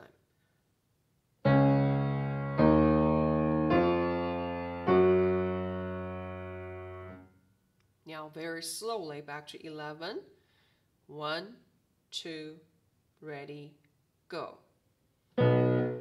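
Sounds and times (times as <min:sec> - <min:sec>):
slow piano notes: 0:01.4 - 0:07.3, 0:15.4 - 0:16.0.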